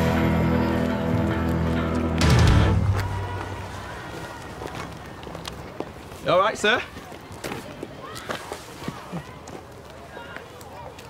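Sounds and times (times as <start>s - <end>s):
footsteps: 0.0s - 11.0s
children chattering and calling: 3.0s - 11.0s.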